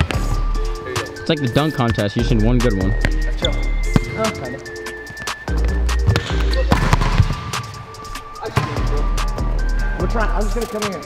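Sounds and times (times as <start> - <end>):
background music with bass: 0.0 - 11.0
volleyball smacking gym floor: 6.1 - 7.6.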